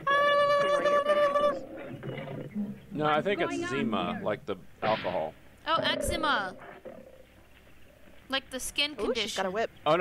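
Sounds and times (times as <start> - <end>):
loud steady-pitched cry: 0.0 - 1.9.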